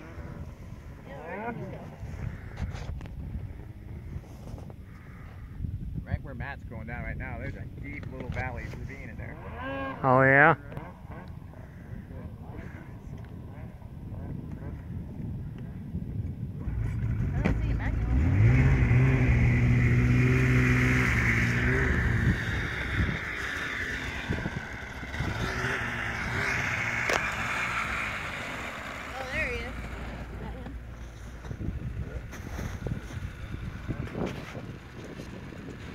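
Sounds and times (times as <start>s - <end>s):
snowmobile engine revving: 0.0s - 2.7s, 8.3s - 14.9s, 16.6s - 35.9s.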